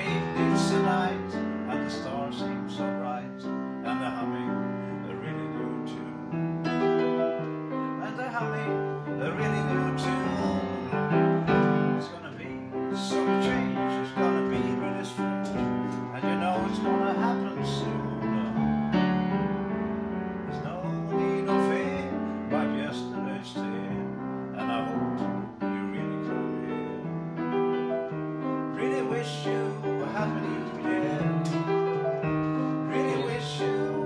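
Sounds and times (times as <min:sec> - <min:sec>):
upright piano playing: 0:00.0 - 0:34.0.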